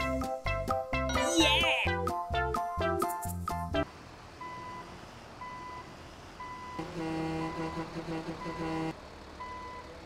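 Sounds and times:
children's music: 0:00.0 - 0:03.9
truck reversing beeper: 0:04.4 - 0:10.0.

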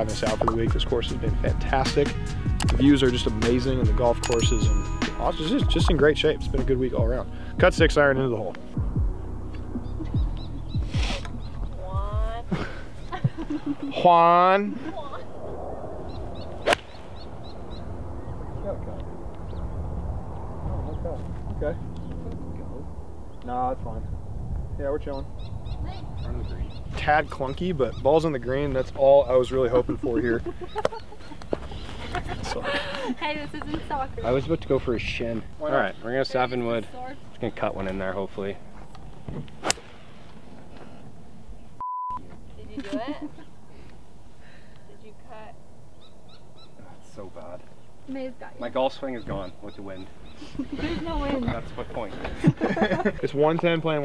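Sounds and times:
faint outdoor background: 0:00.0 - 0:54.0
golf club striking ball: 0:16.6 - 0:17.1, 0:39.6 - 0:40.1
censor bleep tone: 0:41.8 - 0:42.2.

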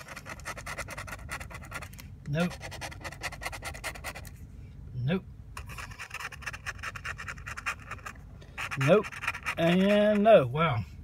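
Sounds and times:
scratching lottery ticket coating: 0:00.0 - 0:04.3, 0:05.6 - 0:10.4.

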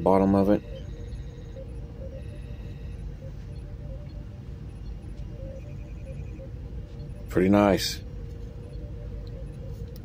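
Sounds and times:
faint steady tone: 0:00.0 - 0:10.0
low background hum: 0:00.0 - 0:10.0.

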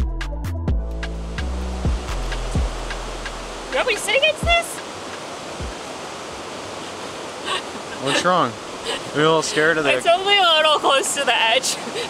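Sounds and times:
creek water rushing: 0:00.9 - 0:12.0.

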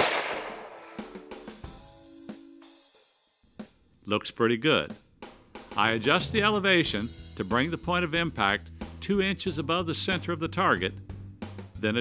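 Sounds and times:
rifle shot echoing: 0:00.0 - 0:01.1.

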